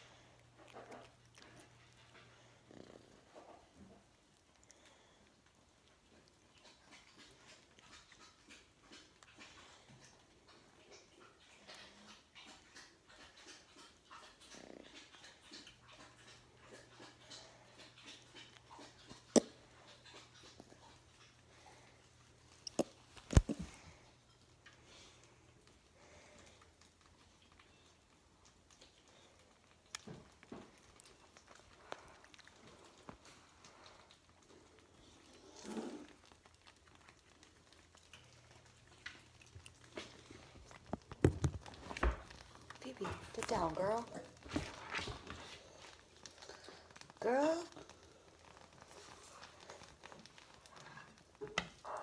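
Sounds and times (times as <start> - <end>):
animal snuffling: 30.0 - 36.2.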